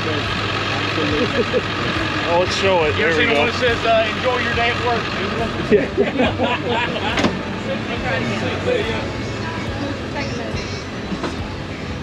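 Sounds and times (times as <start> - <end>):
people talking: 0.0 - 11.6
vehicle engines idling: 0.0 - 12.0.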